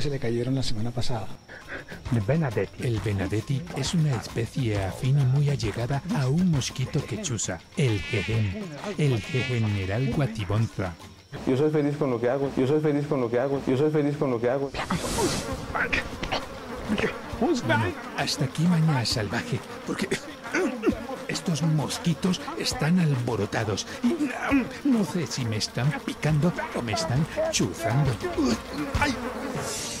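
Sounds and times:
mosquitoes buzzing: 0:00.1 - 0:30.0.

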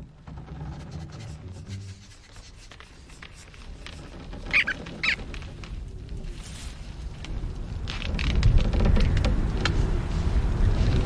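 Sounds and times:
faint rustling movement: 0:00.0 - 0:11.0
cartoon squirrel shrieking: 0:04.5 - 0:05.2.

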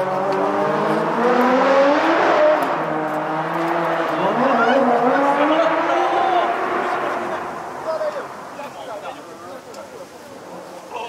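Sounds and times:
engine revving up: 0:00.0 - 0:08.8
car engines running: 0:00.0 - 0:11.0
voices: 0:03.9 - 0:11.0.

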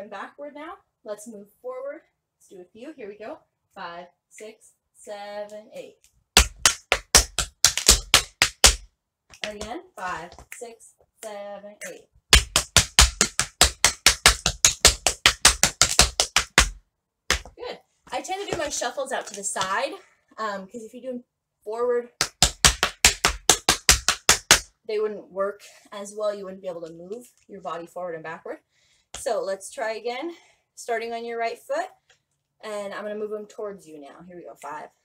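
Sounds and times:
woman speaking: 0:00.0 - 0:06.0, 0:09.4 - 0:12.1, 0:17.5 - 0:22.1, 0:32.6 - 0:34.9
tap shoes on wooden board: 0:06.4 - 0:10.5, 0:12.4 - 0:19.8, 0:22.2 - 0:24.7.

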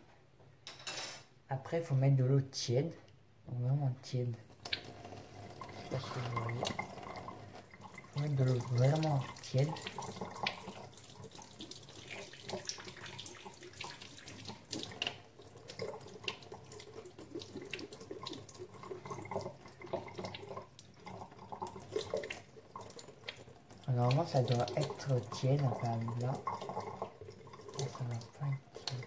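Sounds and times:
tap water splashing into sink: 0:04.6 - 0:29.0.

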